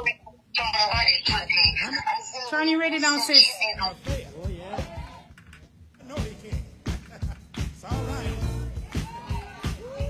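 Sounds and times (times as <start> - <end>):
radio playing: 0.0 - 5.1.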